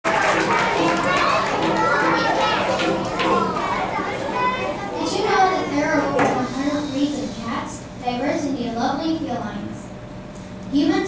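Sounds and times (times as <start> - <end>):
children chattering: 0.0 - 9.9.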